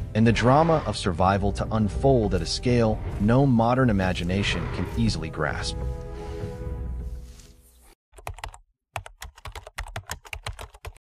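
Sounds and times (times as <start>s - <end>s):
background music: 0.0s - 8.0s.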